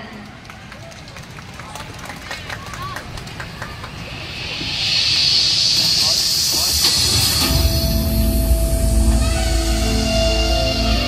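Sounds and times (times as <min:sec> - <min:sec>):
low rumble: 0:03.0 - 0:11.0.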